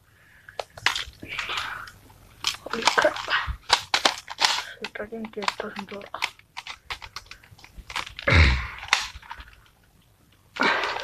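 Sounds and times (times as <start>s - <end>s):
toy blaster clicking: 2.4s - 8.2s.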